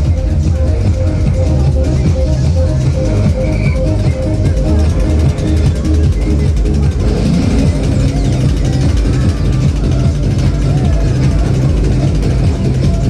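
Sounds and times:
fairground ride machinery droning: 0.0 - 13.0
voices: 0.0 - 13.0.

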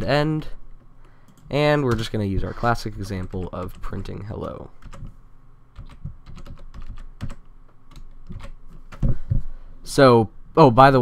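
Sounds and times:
typing on computer keyboard: 5.8 - 9.0.

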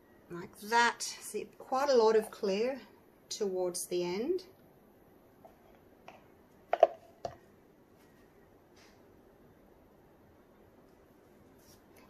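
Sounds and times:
plastic cups clicking on table: 6.7 - 7.4.

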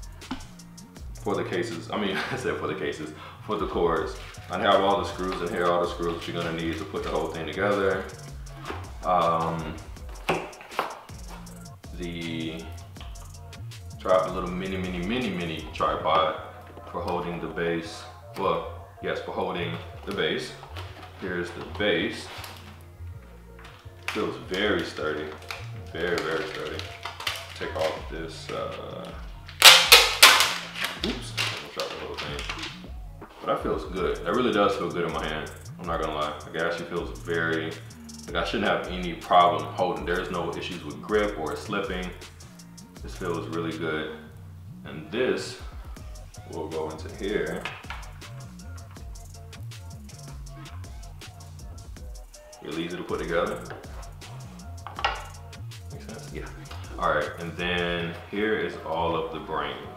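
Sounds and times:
background music with bass line: 0.0 - 59.9.

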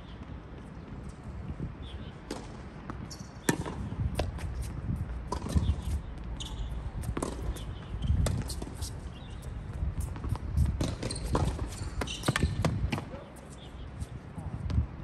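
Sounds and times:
footsteps on court: 2.3 - 14.8
racket striking tennis ball: 3.4 - 4.6, 7.0 - 9.0, 10.0 - 13.3
ball bouncing on court: 5.3 - 8.7, 9.4 - 13.2.

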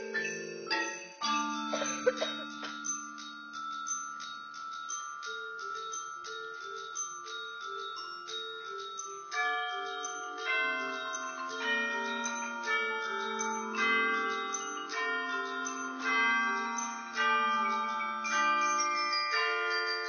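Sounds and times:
marimbas and metal mallet instruments: 0.0 - 20.0.

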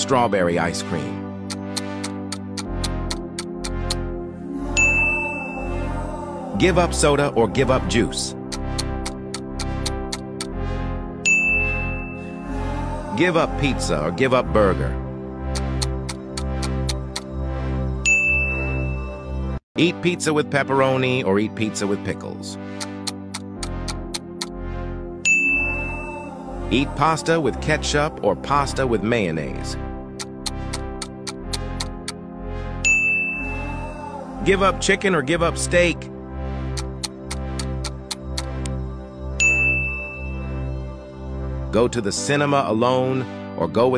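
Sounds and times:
background music: 0.0 - 43.9
countdown ticking: 1.3 - 12.4, 14.7 - 19.2, 22.6 - 27.3, 29.6 - 35.0, 35.6 - 41.7
bell-like ding: 4.8 - 5.8, 11.3 - 12.3, 18.1 - 19.1, 25.3 - 26.1, 32.8 - 33.6, 39.4 - 40.6.

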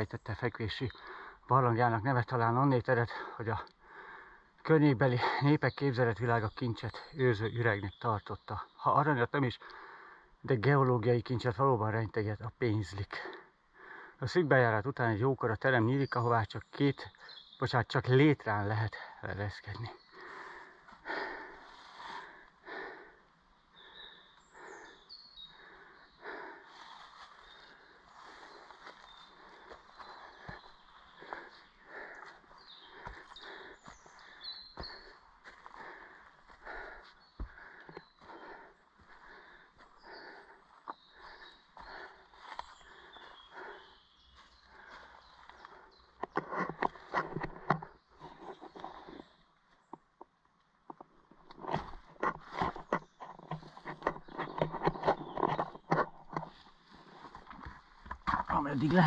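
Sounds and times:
footsteps crunching dry leaves: 26.7 - 30.7.

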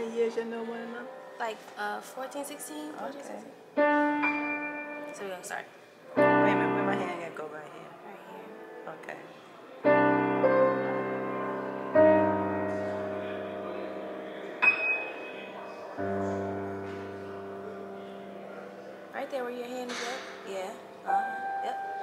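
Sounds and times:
piano chords: 3.5 - 7.7, 8.3 - 22.0.

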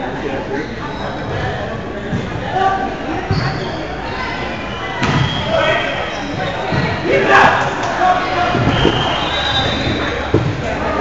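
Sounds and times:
players calling: 5.4 - 11.0.

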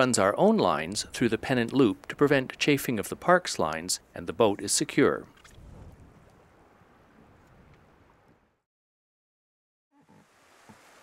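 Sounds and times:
faint hiss of wind and sea: 10.0 - 11.0.

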